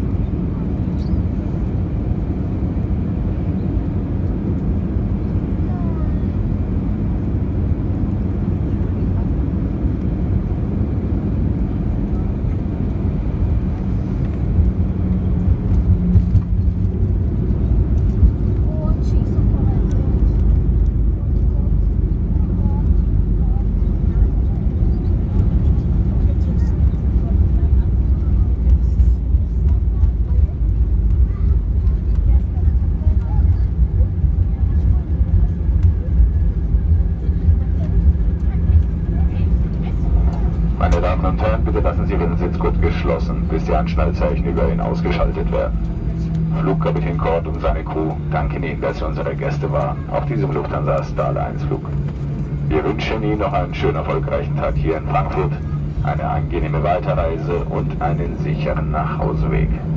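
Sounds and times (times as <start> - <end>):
airliner engine and airflow rumble: 0.0 - 59.9.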